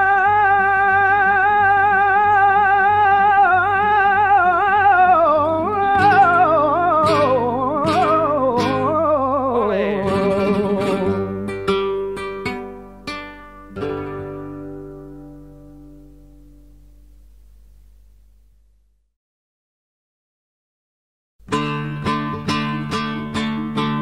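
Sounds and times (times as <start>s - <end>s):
man singing flamenco: 0.0s - 12.7s
flamenco guitar strums: 0.0s - 18.0s, 21.4s - 24.0s.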